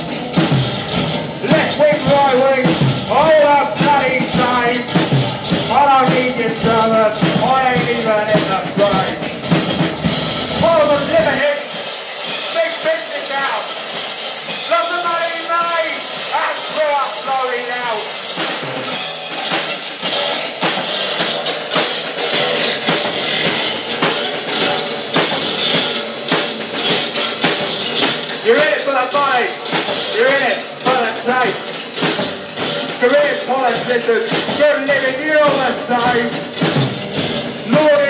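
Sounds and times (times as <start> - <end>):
drum kit with busy cymbals: 0.0 - 38.0
live rock band: 0.0 - 38.0
person speaking: 1.4 - 5.0, 5.7 - 9.2, 10.5 - 11.8, 12.4 - 13.7, 14.6 - 18.2, 28.4 - 31.7, 33.0 - 36.4.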